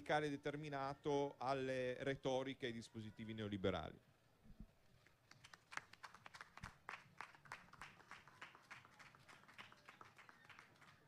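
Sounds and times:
scattered applause: 5.0 - 11.0.

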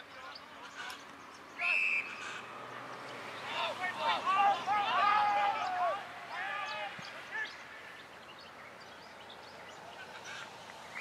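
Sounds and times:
player shouting: 3.5 - 7.6.

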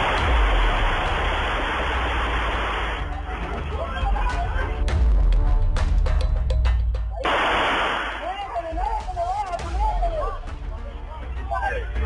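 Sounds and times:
static hiss: 0.0 - 3.0, 7.3 - 8.4.

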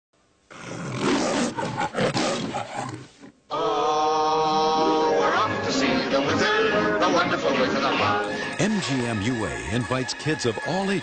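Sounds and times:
lion roaring: 0.5 - 3.3.

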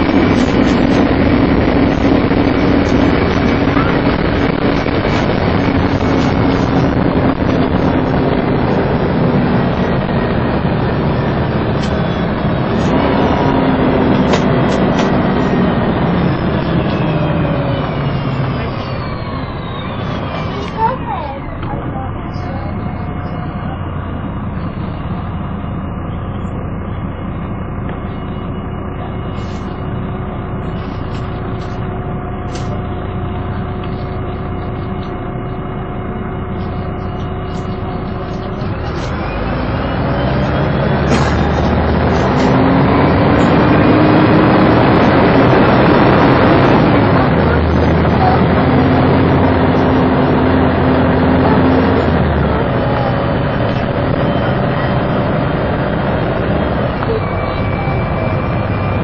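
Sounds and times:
bus diesel engine running: 0.0 - 59.0
drivetrain whine falling in pitch: 0.0 - 59.0
steady whining tones: 0.0 - 59.0.

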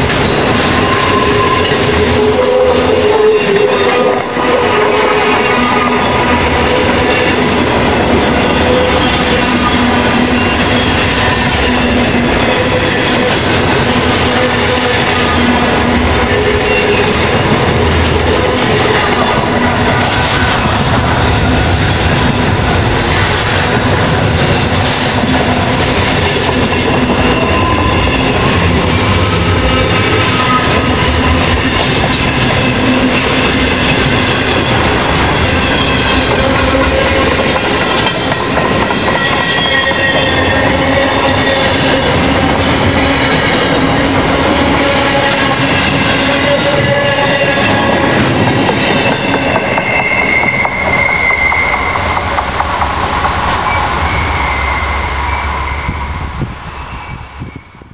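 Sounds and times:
freight train rolling past: 0.0 - 57.9
wheel squealing: 24.5 - 56.2.

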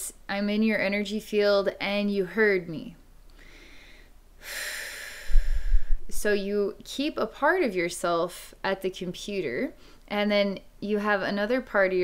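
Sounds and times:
person breathing in through nose: 3.4 - 6.0.

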